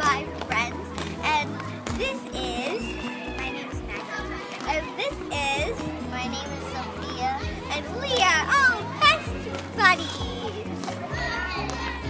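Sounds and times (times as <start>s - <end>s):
background music: 0.0s - 12.0s
children's voices: 0.0s - 12.0s.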